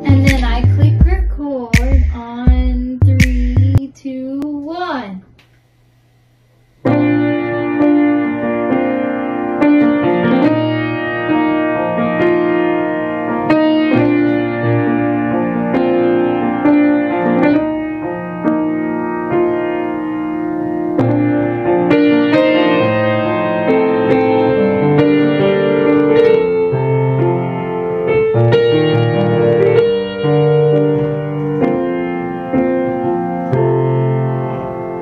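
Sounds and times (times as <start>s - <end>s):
grand piano chord ringing: 6.9s - 35.0s.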